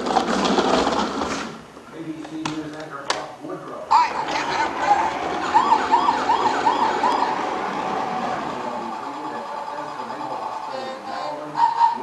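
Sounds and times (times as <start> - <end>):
siren yelping: 3.9 - 12.0.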